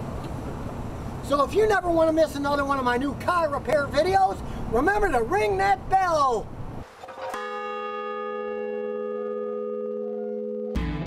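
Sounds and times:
large bell ringing: 0:07.2 - 0:10.8.

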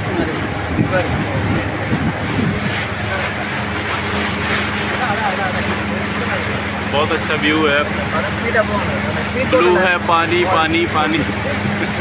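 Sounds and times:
motorboat engine hum: 0:00.0 - 0:12.0
people's voices: 0:00.0 - 0:12.0
water noise: 0:00.0 - 0:12.0
wind: 0:00.0 - 0:12.0.

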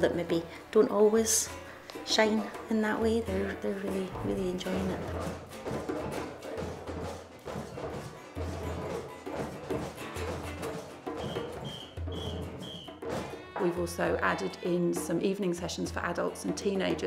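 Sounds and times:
children drumming on djembes: 0:02.3 - 0:15.5.

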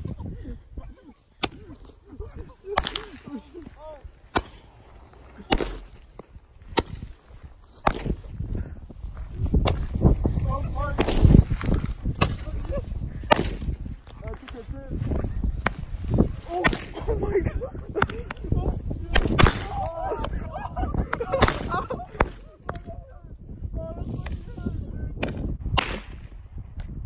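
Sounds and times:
wind rumble on microphone: 0:00.0 - 0:02.7, 0:06.1 - 0:27.0
small fireworks cracking: 0:01.4 - 0:08.2
firework crack: 0:02.6 - 0:08.3, 0:10.9 - 0:13.8, 0:15.6 - 0:17.1, 0:17.9 - 0:19.8.

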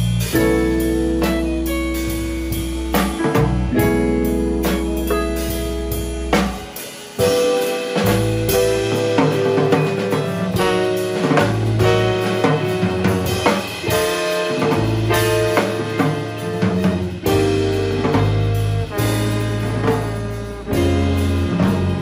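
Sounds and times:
bass line: 0:00.0 - 0:22.0
drum kit with cymbals: 0:00.0 - 0:22.0
keyboard: 0:00.0 - 0:22.0
trombone: 0:07.2 - 0:22.0.

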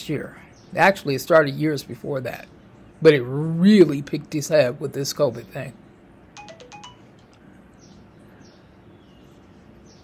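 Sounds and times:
phone text alert tone: 0:06.4 - 0:07.4.

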